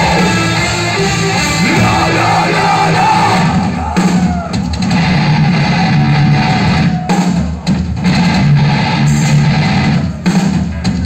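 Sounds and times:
distorted electric guitars: 0.0s - 11.0s
drum kit: 0.0s - 11.0s.

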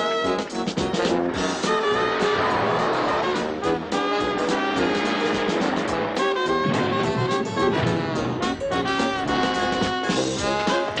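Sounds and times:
brassy jazzy film score music: 0.0s - 11.0s.

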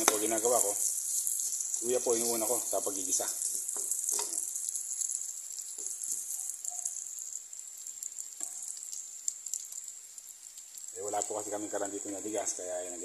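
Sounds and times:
meat sizzling in fat: 0.0s - 13.0s.

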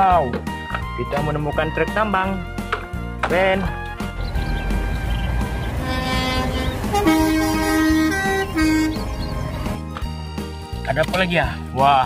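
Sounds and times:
truck diesel engines rumbling: 2.4s - 10.7s
lorry horn blasts: 5.4s - 9.2s.

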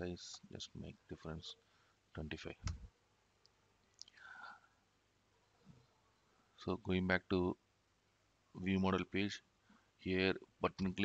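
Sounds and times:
faint whispered breath: 4.0s - 4.8s.

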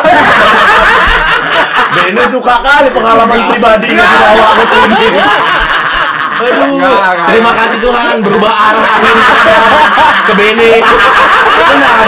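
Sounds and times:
men laughing loudly: 0.0s - 12.0s.

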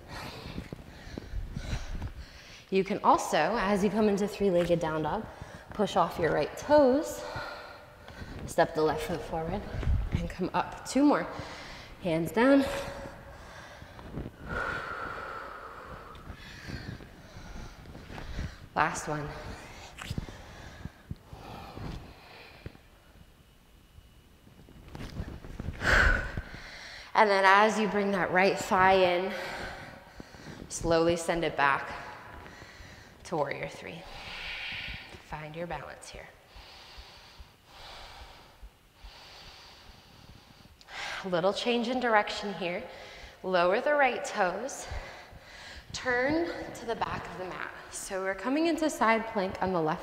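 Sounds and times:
woman breathing hard: 0.0s - 2.7s, 11.3s - 22.9s, 25.6s - 27.1s, 29.2s - 30.7s, 31.9s - 33.2s, 34.0s - 35.2s, 36.4s - 41.3s, 42.9s - 43.4s, 44.8s - 46.8s.

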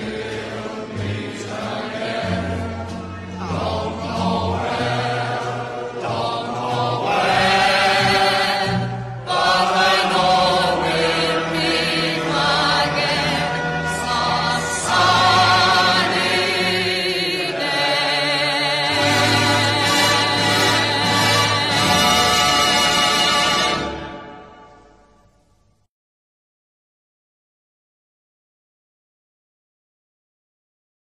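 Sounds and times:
classical singing with vibrato: 0.0s - 24.3s
instrumental accompaniment: 0.0s - 25.8s.

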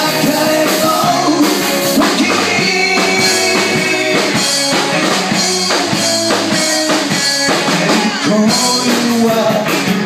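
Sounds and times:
drum kit beat: 0.0s - 10.0s
electric bass: 0.0s - 10.0s
overdriven electric guitars: 0.0s - 10.0s.

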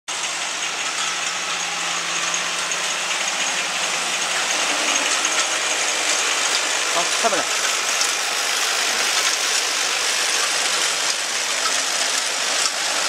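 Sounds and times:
filling machine whirring: 0.1s - 13.0s.

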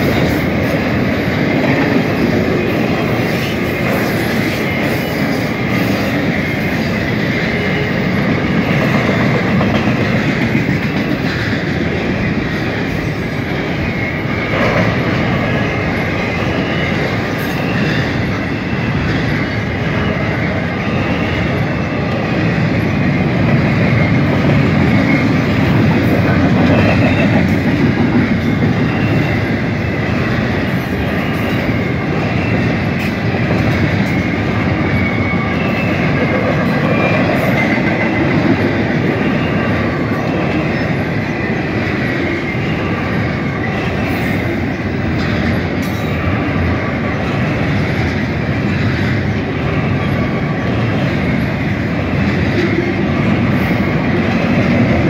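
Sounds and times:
steel wheels rolling on rail: 0.0s - 55.0s.

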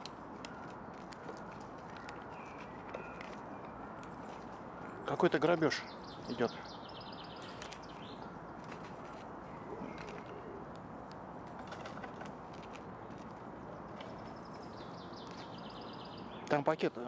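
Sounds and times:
outdoor background hiss: 0.0s - 17.0s
bird chirping trill: 2.3s - 8.6s, 13.9s - 16.8s.

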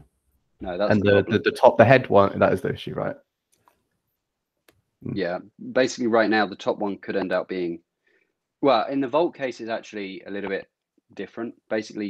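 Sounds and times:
man speaking: 0.6s - 3.2s, 5.0s - 7.8s, 8.6s - 10.6s, 11.2s - 12.0s.

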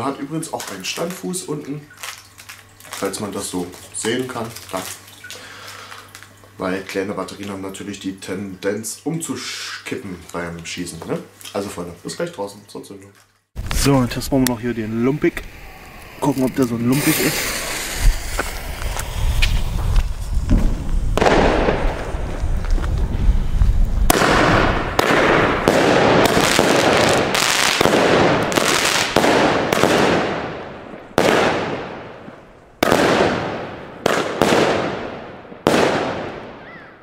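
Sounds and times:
firework fuse hissing: 14.9s - 29.9s
firework bangs: 16.0s - 36.7s.

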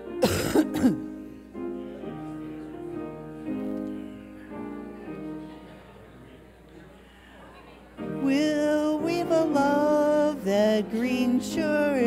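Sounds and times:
piano playing: 0.0s - 6.4s, 7.8s - 12.0s.

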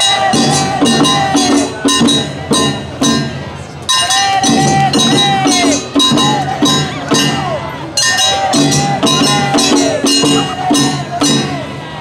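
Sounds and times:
low instruments: 0.0s - 12.0s
hand gong struck on steady beat: 8.3s - 11.6s.

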